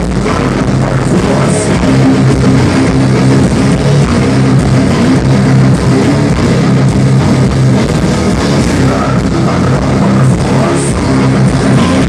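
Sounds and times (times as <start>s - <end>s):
live heavy rock band: 0.0s - 12.0s.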